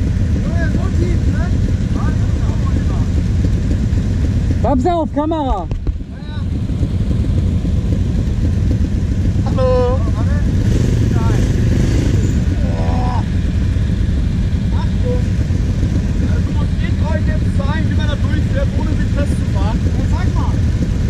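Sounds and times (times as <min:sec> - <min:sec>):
quad bike engine idling: 0:00.0 - 0:21.0
people talking: 0:00.4 - 0:03.2, 0:04.6 - 0:06.5, 0:09.5 - 0:10.5, 0:11.1 - 0:11.5, 0:12.6 - 0:13.3, 0:14.7 - 0:15.3, 0:16.2 - 0:20.6.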